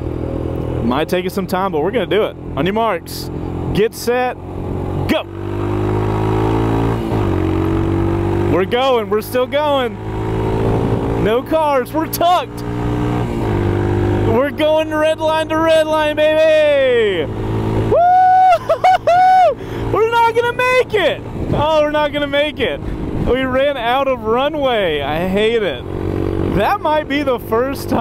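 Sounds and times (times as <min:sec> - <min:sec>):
motorcycle engine accelerating hard: 0:00.0 - 0:28.0
wind: 0:00.0 - 0:28.0
man's high-pitched wordless cries: 0:15.9 - 0:17.2, 0:17.8 - 0:21.2.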